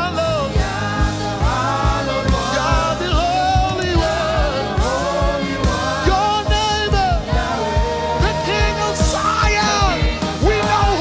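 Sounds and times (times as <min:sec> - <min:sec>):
gospel singing with band: 0:00.0 - 0:11.0
steady low beat: 0:00.0 - 0:11.0.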